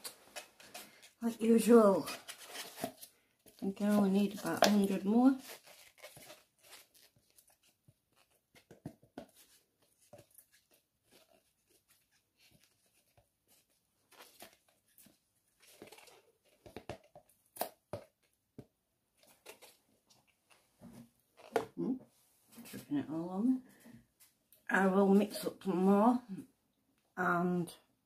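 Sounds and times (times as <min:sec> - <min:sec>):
gloved hands handling plastic cup: 0:00.0 - 0:21.8.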